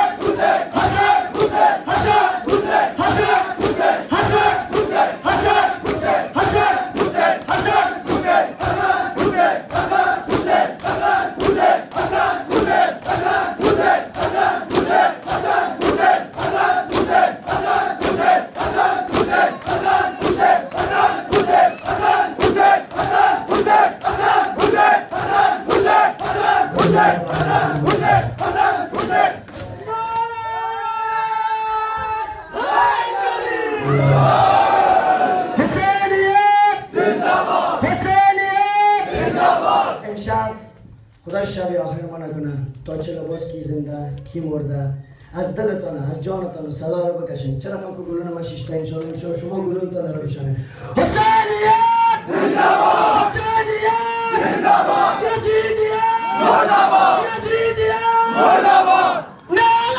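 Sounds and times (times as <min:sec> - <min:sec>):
hands striking chests rhythmically: 0:00.0 - 0:30.3
crowd calling out together: 0:00.0 - 0:40.0, 0:51.0 - 0:59.9.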